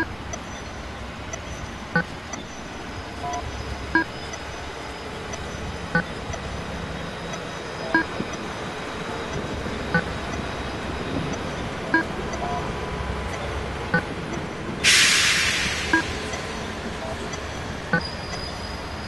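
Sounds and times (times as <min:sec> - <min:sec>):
city street traffic: 0:00.0 - 0:19.0
loud hiss: 0:14.8 - 0:15.9.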